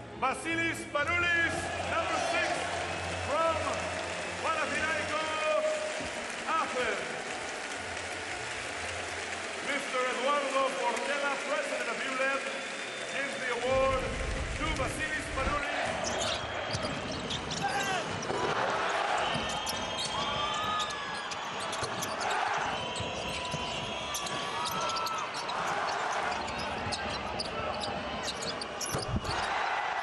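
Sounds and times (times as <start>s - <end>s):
arena crowd noise: 0.0s - 30.0s
sneakers squeaking on hardwood: 16.0s - 29.6s
basketball bouncing: 20.3s - 29.4s.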